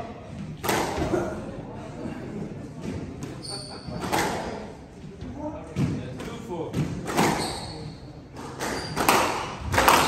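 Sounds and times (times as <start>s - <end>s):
squash ball hits echoing: 5.7s - 10.0s.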